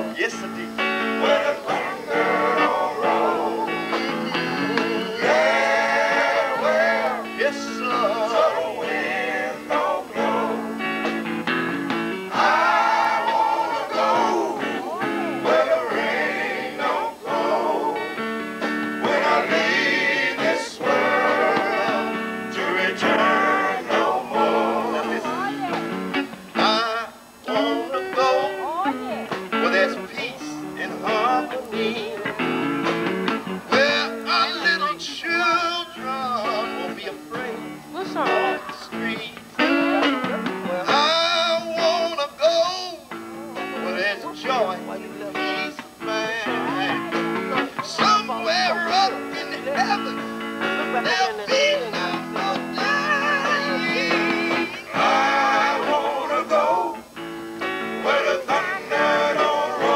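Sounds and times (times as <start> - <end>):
guitar-led backing music: 0.0 - 59.9
man singing into microphone: 20.3 - 25.7, 26.6 - 32.4, 33.7 - 43.1, 43.8 - 57.2.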